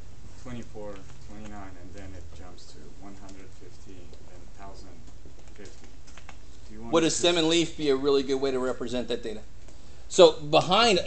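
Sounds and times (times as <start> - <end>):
room noise: 0.0 - 11.0
man speaking: 0.4 - 5.8, 6.6 - 9.5, 10.1 - 11.0
light clicks and taps: 3.1 - 3.5.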